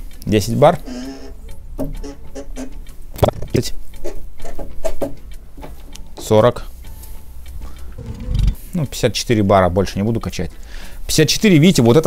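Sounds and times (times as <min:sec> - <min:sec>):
hand pump squeaks: 0:00.8 - 0:02.8.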